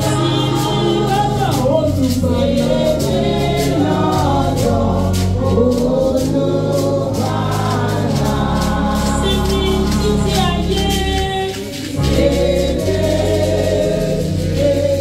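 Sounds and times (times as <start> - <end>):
congregation singing a hymn: 0.0 - 15.0
steady beat: 0.0 - 15.0
sustained bass notes: 0.0 - 15.0.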